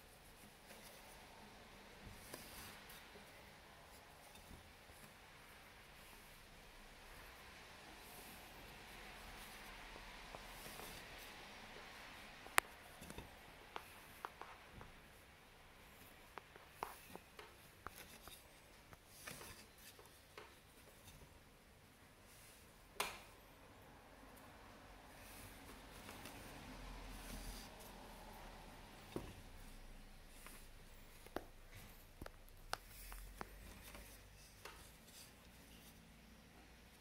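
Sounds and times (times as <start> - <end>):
yarn handling on a loom: 0.0 - 23.5, 24.2 - 36.1.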